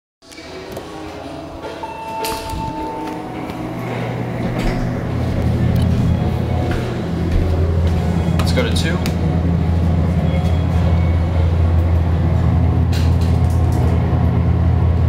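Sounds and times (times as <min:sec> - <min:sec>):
elevator hum: 0:00.3 - 0:15.0
short beep: 0:01.8 - 0:04.1.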